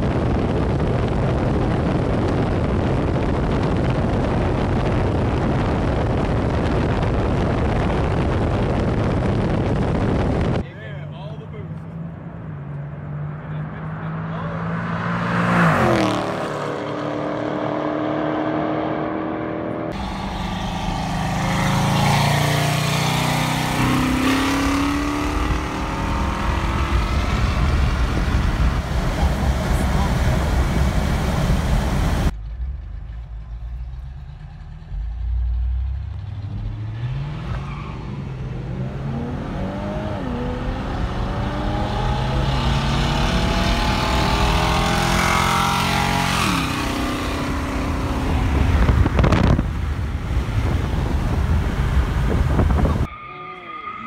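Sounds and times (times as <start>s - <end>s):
car engines racing past: 10.8s - 54.0s
engines revving: 10.9s - 54.0s.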